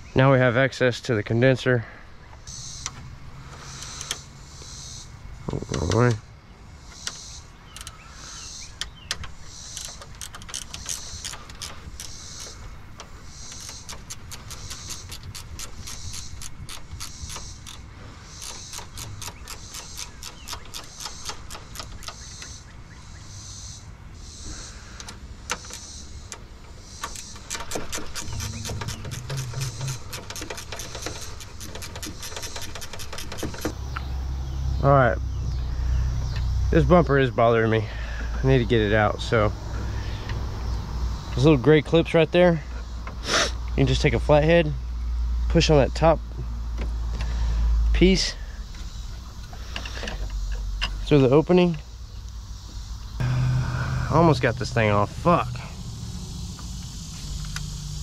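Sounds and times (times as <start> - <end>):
high pulsing insect chirp: 2.3 - 58.0
hand ratchet clicking: 8.8 - 22.5, 25.0 - 33.7.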